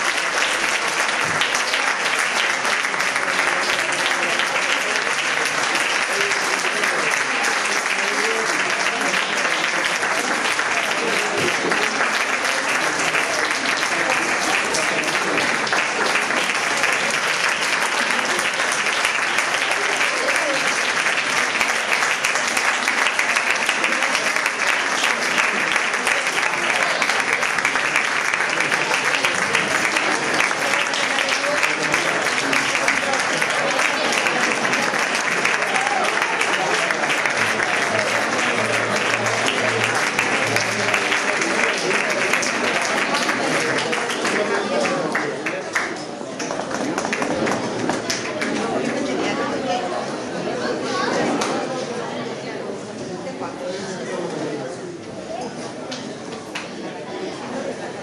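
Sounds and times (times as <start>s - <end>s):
audience applauding: 0.0s - 49.8s.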